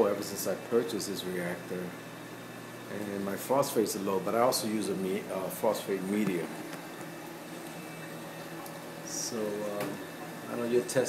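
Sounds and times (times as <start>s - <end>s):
aquarium pump hum: 0.0s - 11.0s.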